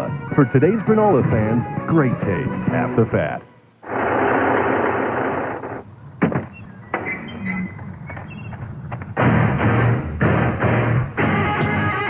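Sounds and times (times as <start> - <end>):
loud rushing noise: 3.8 - 5.8
rock music with electric guitar: 9.2 - 12.0.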